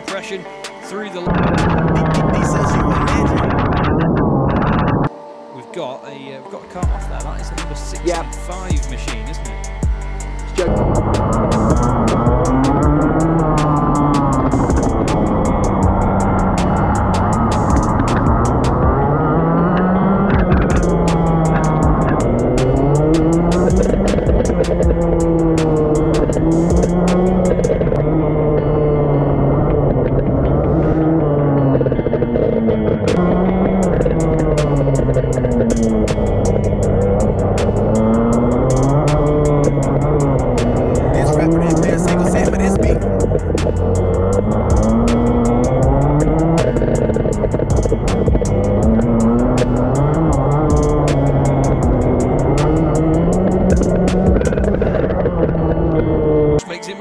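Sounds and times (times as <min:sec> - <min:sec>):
kart engine revving: 0:01.2 - 0:05.1, 0:10.5 - 0:56.6
sharp ticks: 0:10.6 - 0:18.9, 0:20.3 - 0:28.0, 0:32.8 - 0:55.6.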